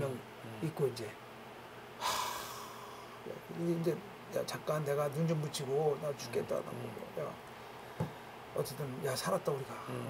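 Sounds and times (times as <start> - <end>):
man sighing: 2.0 - 3.1.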